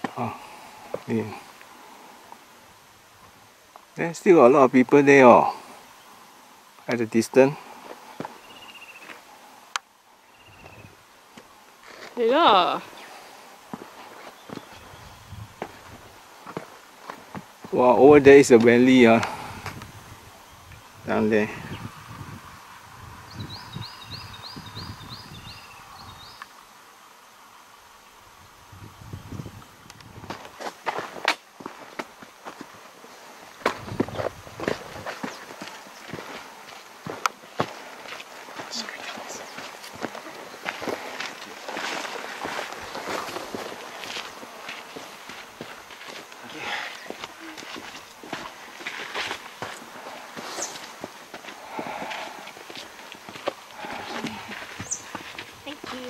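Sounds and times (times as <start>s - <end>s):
footsteps crunching on stony track: 13.6s - 17.8s, 30.0s - 56.0s.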